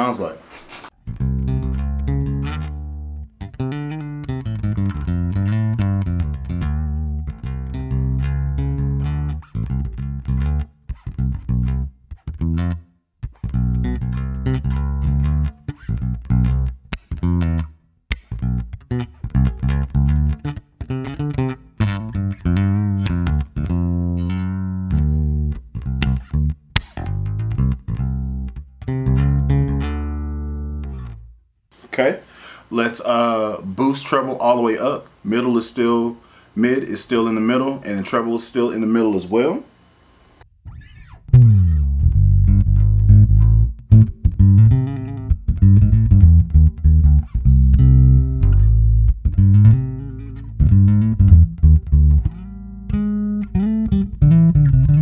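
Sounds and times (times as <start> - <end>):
plucked electric bass: 1.0 - 31.4, 40.5 - 55.0.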